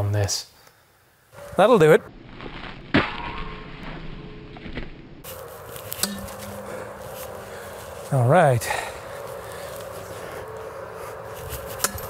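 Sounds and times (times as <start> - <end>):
quiet outdoor background: 0.0 - 12.0.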